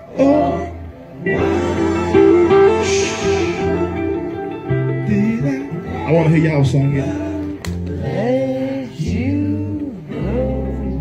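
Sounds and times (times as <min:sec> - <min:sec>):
live band with acoustic guitars: 0:00.0 - 0:11.0
low bass notes: 0:00.0 - 0:11.0
person singing: 0:00.0 - 0:11.0.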